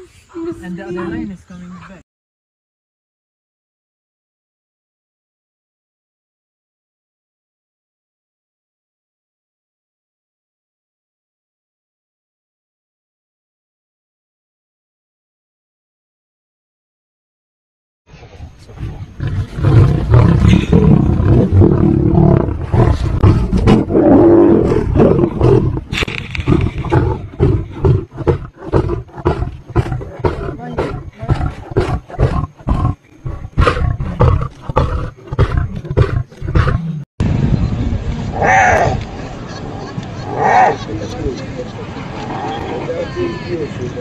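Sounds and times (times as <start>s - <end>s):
lions roaring and growling: 18.7s - 37.0s.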